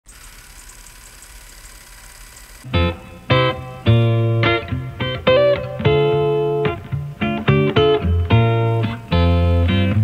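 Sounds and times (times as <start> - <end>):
film projector whirring: 0.1 - 2.7.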